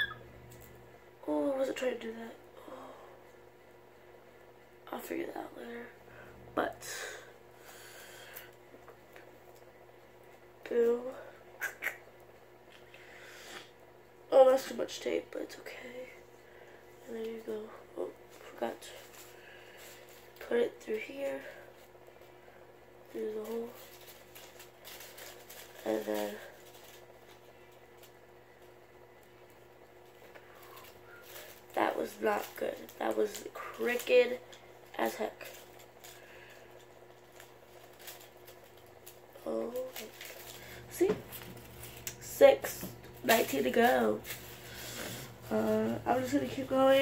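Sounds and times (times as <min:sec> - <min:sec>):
paper and tape rustling: 0:23.1 - 0:28.2, 0:30.0 - 0:47.0.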